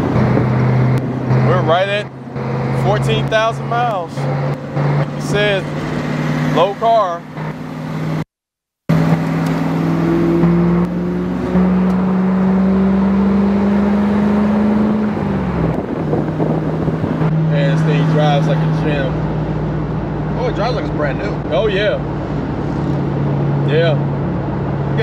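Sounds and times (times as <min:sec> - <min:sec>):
car engine pulling: 0:00.0 - 0:08.2, 0:08.9 - 0:25.0
wind and road noise: 0:00.0 - 0:08.3, 0:08.9 - 0:25.0.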